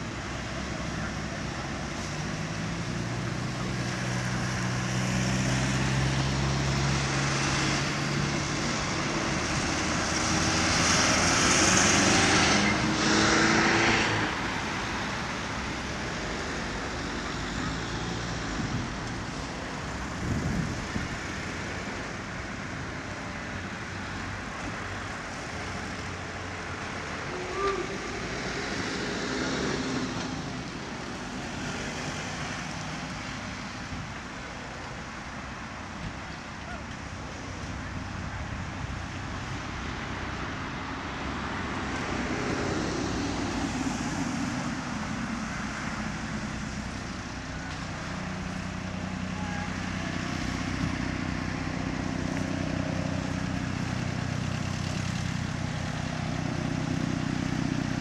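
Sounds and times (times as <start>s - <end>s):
road traffic: 0.0s - 58.0s
vehicle passing: 0.3s - 21.9s, 25.1s - 33.9s.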